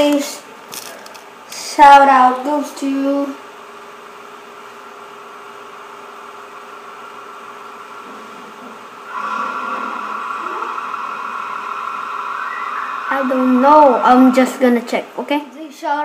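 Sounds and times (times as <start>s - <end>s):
faint steady hum: 0.0s - 16.0s
motor whir: 9.1s - 14.2s.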